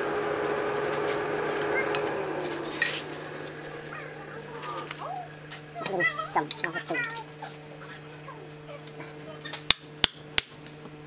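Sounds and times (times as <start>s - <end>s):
low hum: 0.0s - 9.4s.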